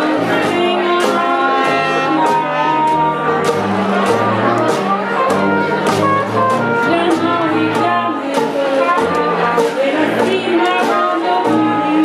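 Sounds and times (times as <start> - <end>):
woman singing: 0.0 - 3.5, 6.7 - 12.0
banjo strumming: 0.0 - 12.0
brass: 0.0 - 12.0
tuba bass line: 0.0 - 12.0.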